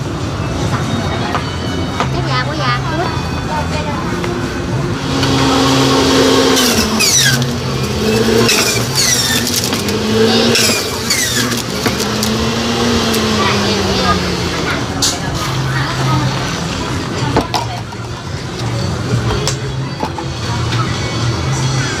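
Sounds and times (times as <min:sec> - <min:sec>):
electric juicer motor humming: 0:05.0 - 0:14.9.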